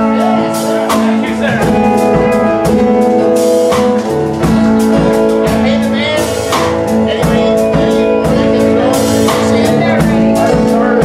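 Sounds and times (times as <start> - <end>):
bass: 0.0 - 11.0
drum kit with cymbals: 0.0 - 11.0
electric and acoustic guitars: 0.0 - 11.0.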